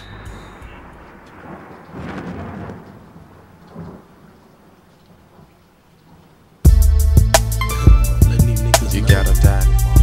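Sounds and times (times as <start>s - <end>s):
thunder rumble: 0.0s - 6.7s
rain hissing: 0.0s - 10.0s.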